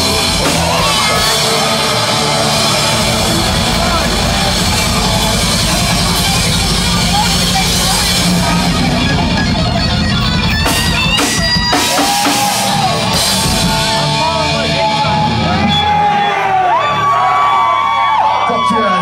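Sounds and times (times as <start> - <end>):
people shouting: 0.0 - 9.4, 11.2 - 13.8, 14.7 - 19.0
live metal band playing: 0.0 - 19.0.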